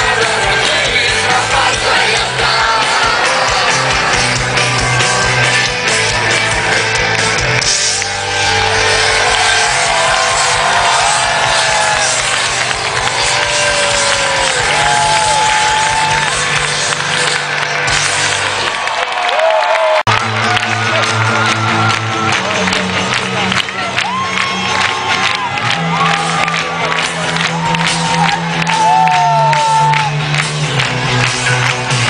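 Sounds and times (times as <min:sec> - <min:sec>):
live rock band: 0:00.0 - 0:18.9
crowd noise: 0:00.0 - 0:32.0.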